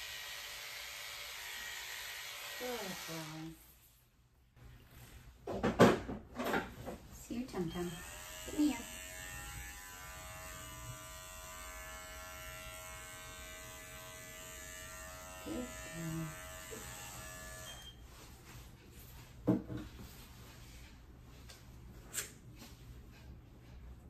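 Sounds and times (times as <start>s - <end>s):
electric clippers buzzing: 0.0s - 3.5s, 7.8s - 17.9s.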